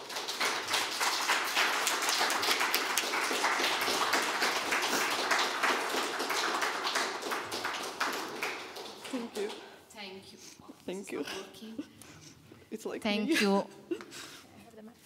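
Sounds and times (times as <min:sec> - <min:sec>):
audience applauding: 0:00.0 - 0:09.7.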